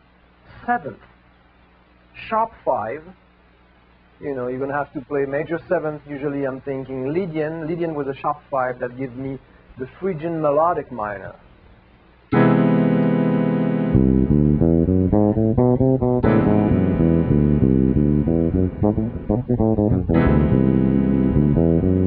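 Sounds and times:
electric bass guitar scale line: 12.3 - 22.0
held chord struck: 12.3 - 22.0.

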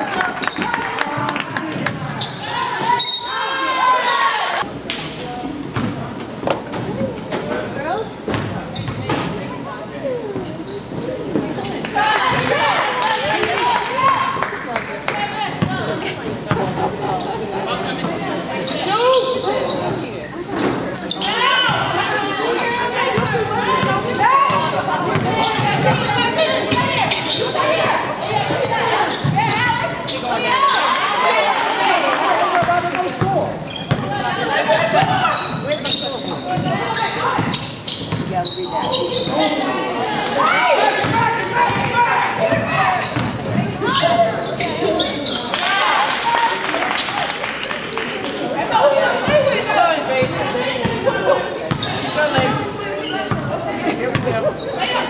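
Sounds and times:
voices calling out: 10.2 - 55.0.

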